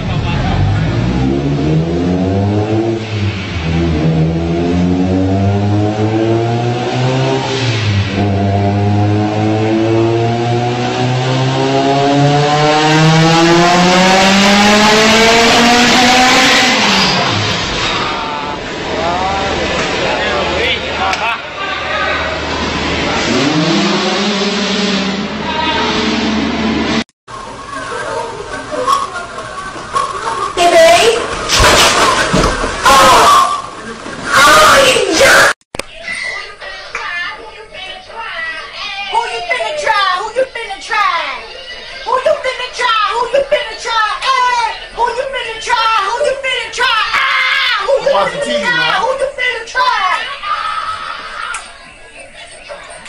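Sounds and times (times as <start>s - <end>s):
car engine revving on dyno: 0.1s - 20.5s, 22.4s - 27.1s.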